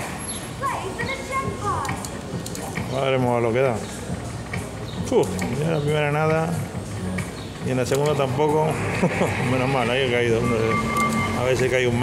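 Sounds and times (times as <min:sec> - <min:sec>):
background chatter: 0:00.0 - 0:12.0
slot machine electronic jingle: 0:09.1 - 0:12.0.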